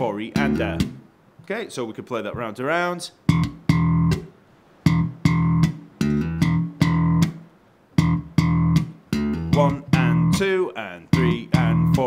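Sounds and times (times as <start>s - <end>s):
slapped electric bass funk riff: 0.0s - 1.0s, 3.2s - 7.4s, 8.0s - 12.0s.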